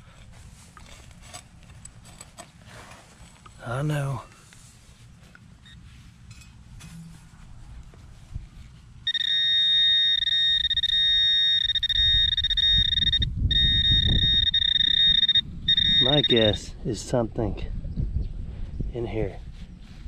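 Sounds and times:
high-pitched pinpointer tone: 0:09.1 - 0:16.7.

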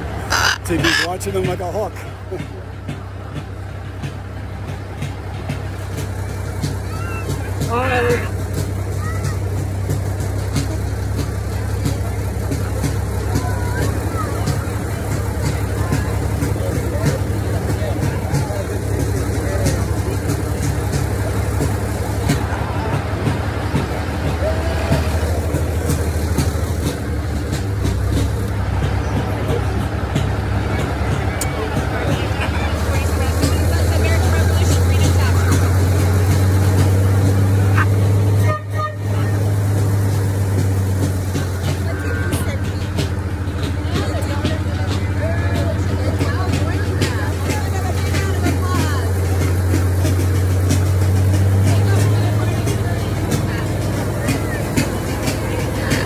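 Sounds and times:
people's voices: 0:00.0 - 0:56.0
vehicle engine drone: 0:00.0 - 0:56.0.

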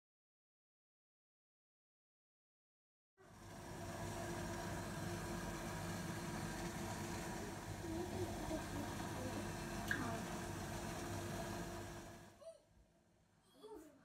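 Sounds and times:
background hum with hiss: 0:03.2 - 0:14.0.

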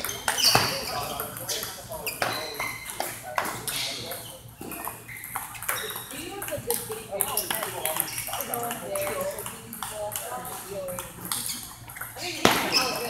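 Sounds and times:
table tennis balls clicking: 0:02.2 - 0:13.0.

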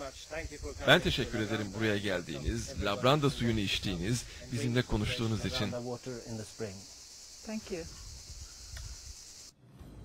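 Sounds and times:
insects chorus: 0:00.0 - 0:09.6
man's voice: 0:00.5 - 0:06.0.

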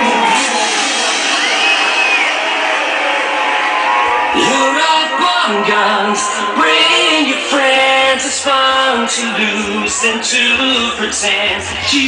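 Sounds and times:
dance music and crowd: 0:00.0 - 0:12.0.

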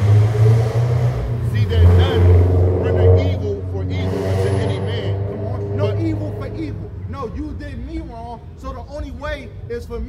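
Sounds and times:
vehicle engine idling: 0:00.0 - 0:10.0
men talking: 0:01.4 - 0:10.0.

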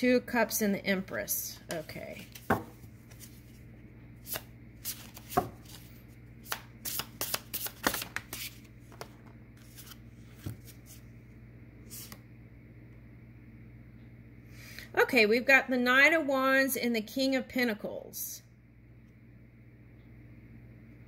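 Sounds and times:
cards snapping and flicking: 0:04.2 - 0:05.8, 0:06.4 - 0:08.6.

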